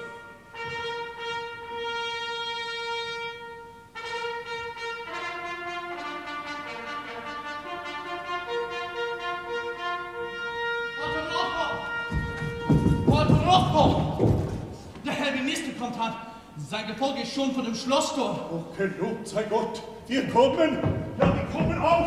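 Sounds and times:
trumpet fanfare: 0.0s - 13.6s.

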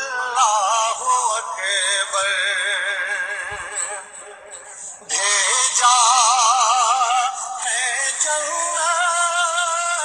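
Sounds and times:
person singing devotional song: 0.0s - 10.0s.

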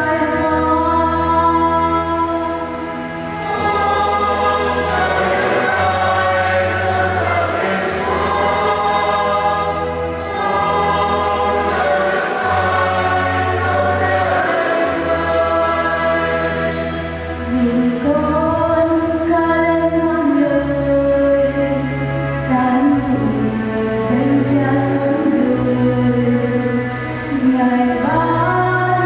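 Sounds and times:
church choir singing: 0.0s - 29.0s
sustained instrumental accompaniment: 0.0s - 29.0s.

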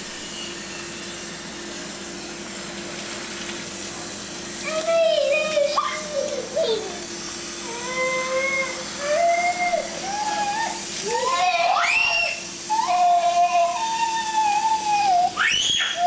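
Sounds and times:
garden hose spraying water: 0.0s - 16.0s
baby squealing and shrieking: 9.4s - 16.0s.

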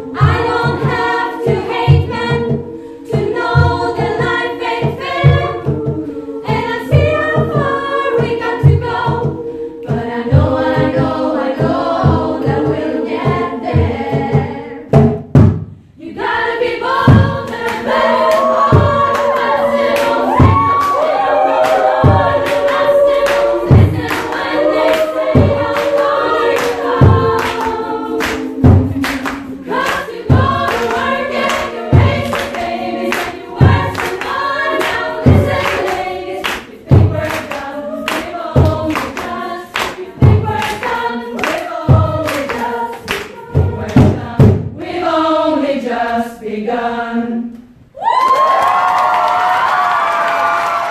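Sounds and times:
women's choir singing: 0.0s - 15.0s, 16.0s - 48.2s
drum beat: 10.0s - 15.7s, 16.9s - 44.8s.

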